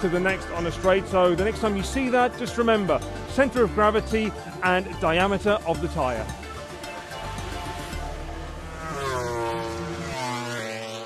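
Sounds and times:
background music: 0.0s - 10.5s
race bike engine: 6.2s - 11.0s.

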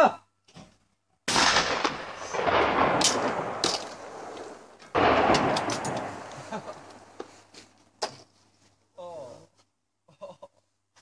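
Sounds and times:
shotgun shot echoing: 1.3s - 7.3s.

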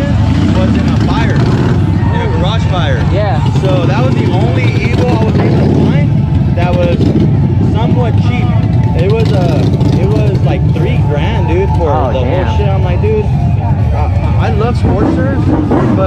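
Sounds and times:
low engine rumble: 0.0s - 16.0s
people talking: 0.0s - 16.0s.

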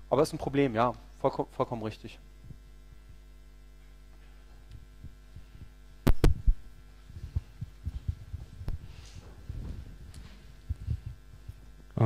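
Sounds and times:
electrical mains hum: 0.0s - 12.0s
soft low thumps: 2.4s - 12.0s.

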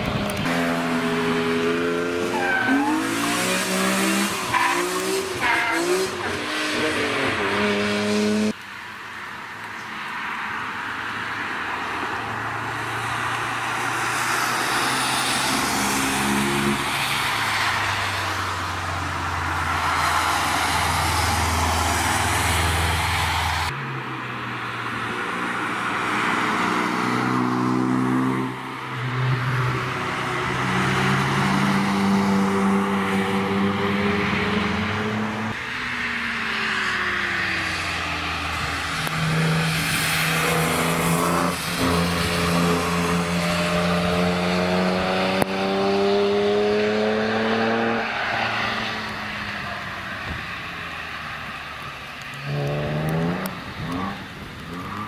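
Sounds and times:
race cars revving past: 0.0s - 8.6s, 12.5s - 24.0s, 24.6s - 55.0s.

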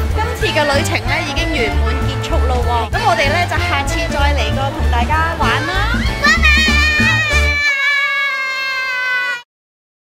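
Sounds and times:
child's high squeal: 6.2s - 9.5s.

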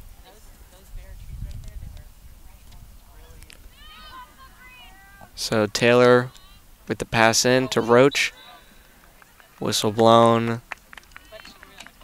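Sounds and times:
distant shouts and chatter: 2.0s - 12.0s.

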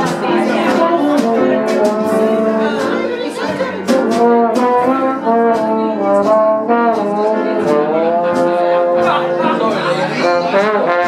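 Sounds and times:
alto saxophone: 0.0s - 11.0s
percussive strikes: 0.0s - 11.0s
piano: 0.0s - 11.0s
trombone: 0.0s - 11.0s.

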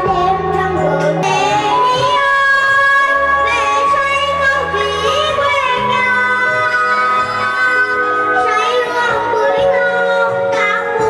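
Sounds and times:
girl singing into microphone: 0.0s - 11.0s.

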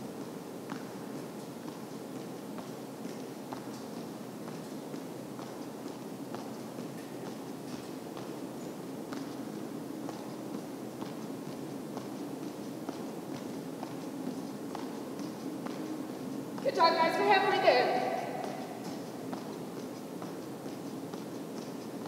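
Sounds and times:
room noise: 1.6s - 22.0s.

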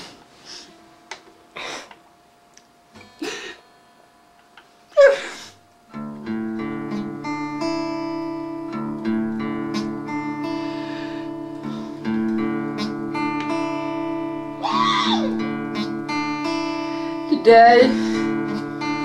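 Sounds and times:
acoustic guitar plucked notes: 5.9s - 19.0s
person vocal noise: 14.6s - 15.4s.

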